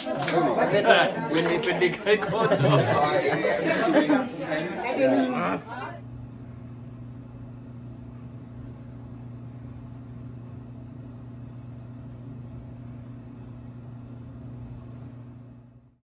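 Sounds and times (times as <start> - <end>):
low electrical hum: 0.0 - 16.0.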